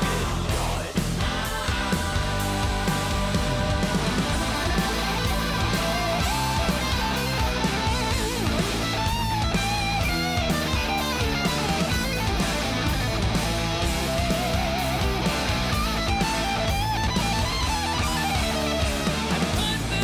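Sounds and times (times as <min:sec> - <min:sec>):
hard rock band playing: 0:00.0 - 0:20.0
electric guitar solo with bent notes: 0:02.7 - 0:20.0.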